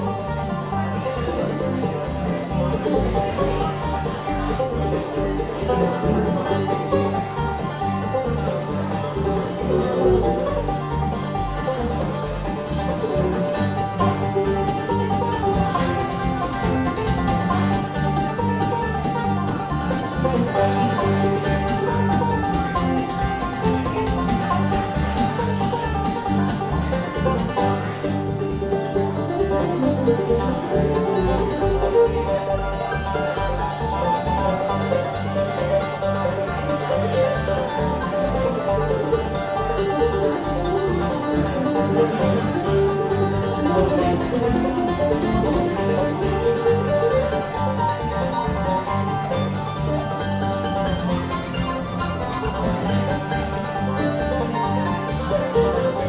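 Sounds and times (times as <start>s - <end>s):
bluegrass band playing: 0.0s - 56.0s
picked banjo: 0.0s - 56.0s.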